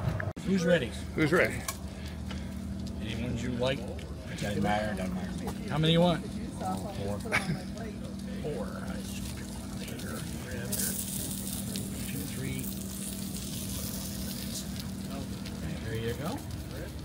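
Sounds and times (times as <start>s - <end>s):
low hum: 0.0s - 17.0s
ribs sizzling on a grill: 0.4s - 17.0s
low background voices: 0.5s - 17.0s.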